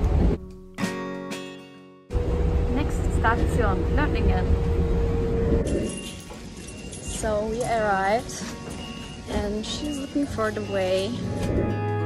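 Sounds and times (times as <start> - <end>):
train interior rumble: 2.1 - 11.9
station ambience: 2.1 - 12.0.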